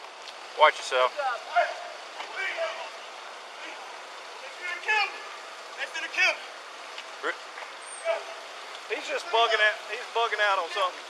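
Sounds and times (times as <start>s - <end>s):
street noise hiss: 0.0s - 11.0s
people talking indistinctly: 0.5s - 11.0s.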